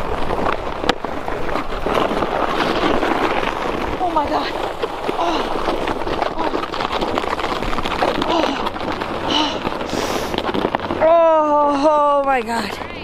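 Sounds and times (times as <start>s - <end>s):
plastic sled scraping over snow: 0.0s - 13.0s.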